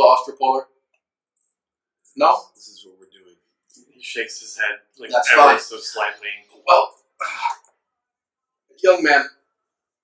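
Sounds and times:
man speaking: 0:02.0 - 0:07.7.

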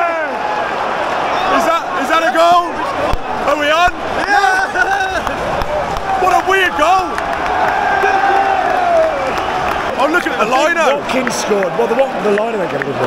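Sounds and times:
football crowd cheering and chanting: 0:00.0 - 0:13.0.

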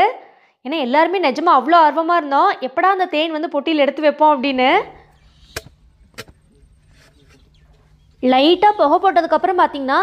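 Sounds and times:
faint low hum: 0:04.2 - 0:10.0.

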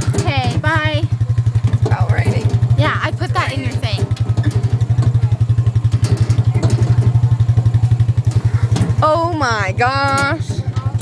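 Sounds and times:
atv engine running: 0:00.0 - 0:11.0.

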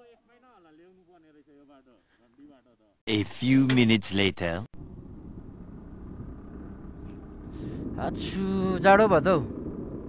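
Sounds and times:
road noise: 0:04.7 - 0:10.0
motorcycle engine rumble: 0:04.8 - 0:10.0.

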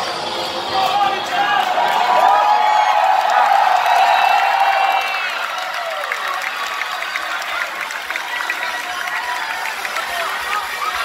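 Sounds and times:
crowd cheering and screaming: 0:00.0 - 0:11.0.

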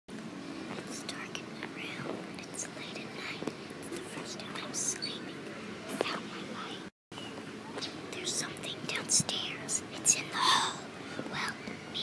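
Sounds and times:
young voices whispering: 0:00.8 - 0:06.9, 0:07.8 - 0:12.0.

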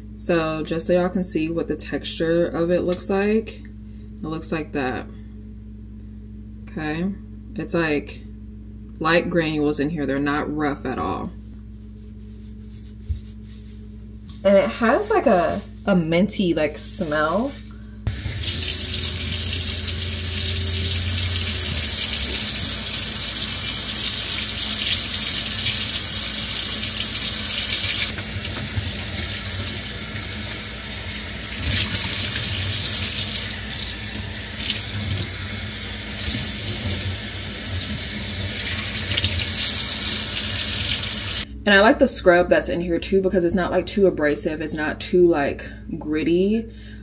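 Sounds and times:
faucet running into a metal sink: 0:18.1 - 0:41.4.

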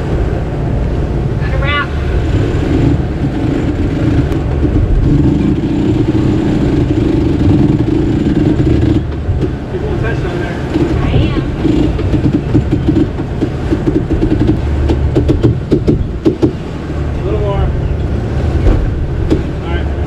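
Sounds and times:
wind and water rumble: 0:00.0 - 0:20.0.

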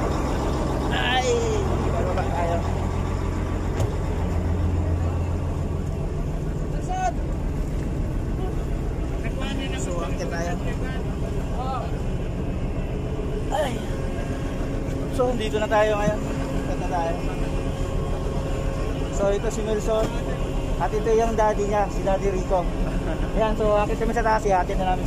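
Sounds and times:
diesel machinery drone: 0:00.0 - 0:25.0
voices: 0:00.0 - 0:25.0.

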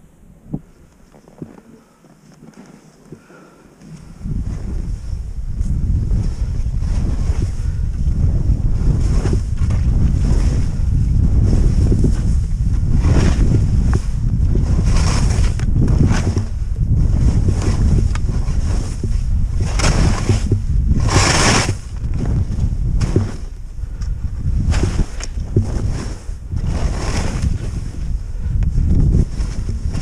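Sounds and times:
wind buffeting microphone: 0:00.0 - 0:01.6, 0:04.0 - 0:30.0
skis hissing through snow: 0:17.0 - 0:20.2, 0:24.6 - 0:28.1.

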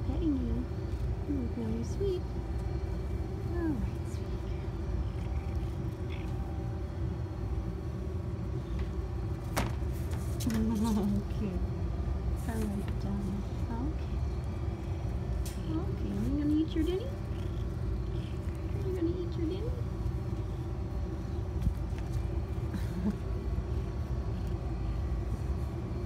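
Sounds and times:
cat purring: 0:00.5 - 0:07.6, 0:12.6 - 0:26.0.

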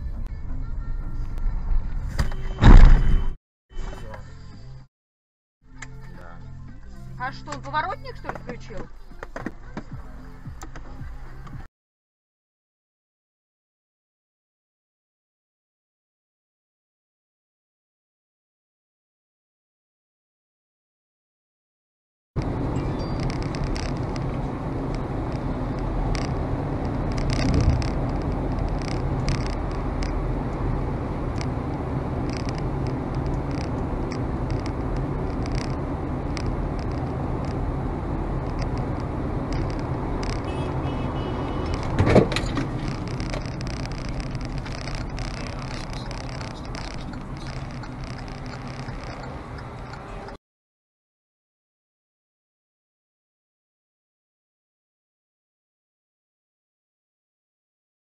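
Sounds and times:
car engine and road noise: 0:00.0 - 0:04.9, 0:05.6 - 0:11.7, 0:22.4 - 0:50.4
dull thump: 0:02.1 - 0:03.4
sharp knock: 0:02.2 - 0:03.4.

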